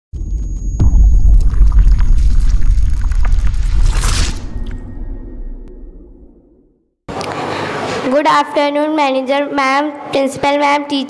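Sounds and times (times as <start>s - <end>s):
loud deep rumble with crackles: 0.7s - 6.5s
whoosh: 0.8s - 6.8s.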